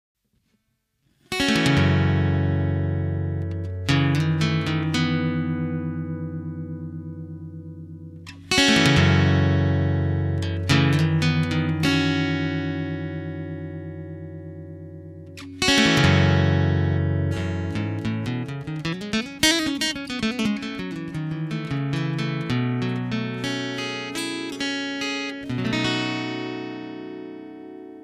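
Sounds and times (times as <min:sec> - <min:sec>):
guitar chords ringing: 0:01.3 - 0:28.0.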